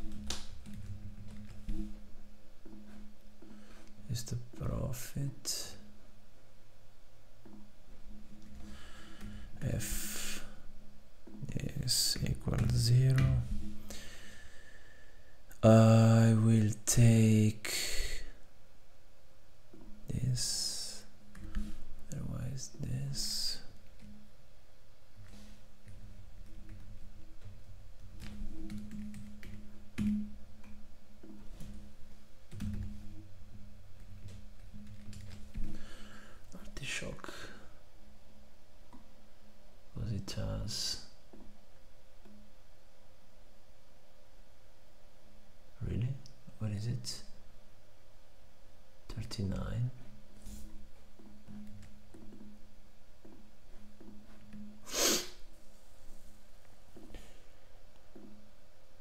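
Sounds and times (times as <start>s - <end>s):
steady low hum: 0.0s - 59.0s
man snorting: 54.8s - 55.4s.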